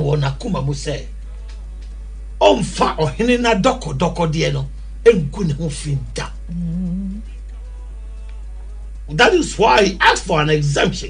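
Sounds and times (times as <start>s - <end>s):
faint background music: 0.0s - 11.0s
person humming: 6.0s - 8.2s.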